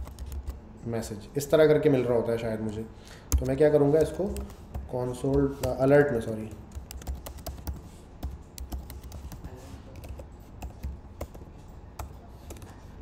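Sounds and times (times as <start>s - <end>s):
typing on a computer keyboard: 0.0s - 0.6s, 3.3s - 5.8s, 6.4s - 12.9s.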